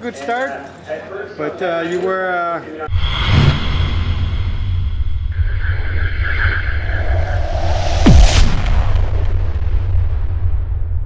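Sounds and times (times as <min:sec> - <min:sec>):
falling pitch sweep: 0:02.9 - 0:09.0
deep steady rumble: 0:02.9 - 0:11.0
explosion-like boom: 0:02.9 - 0:11.0.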